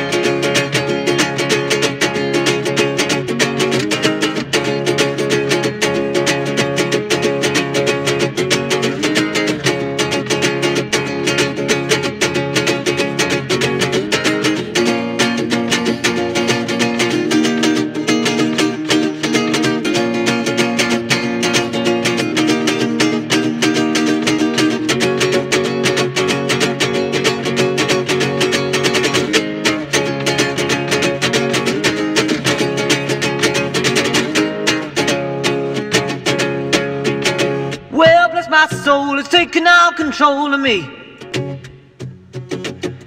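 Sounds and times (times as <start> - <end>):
strummed acoustic string chords: 0.0 - 43.0.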